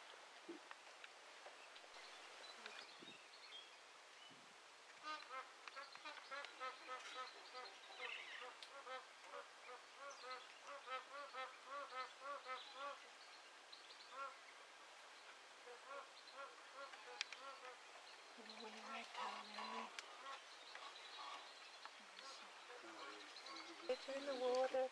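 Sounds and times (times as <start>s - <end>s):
geese honking: 18.7s - 21.5s.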